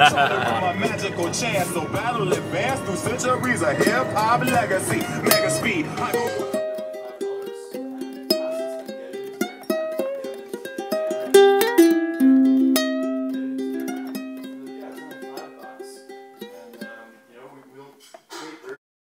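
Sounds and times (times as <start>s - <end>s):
plucked string melody: 0.0s - 17.8s.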